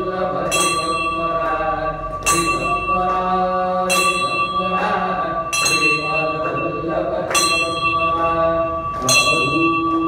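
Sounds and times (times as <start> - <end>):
bell ringing: 0.0 - 10.0
person chanting in long notes: 0.0 - 10.0.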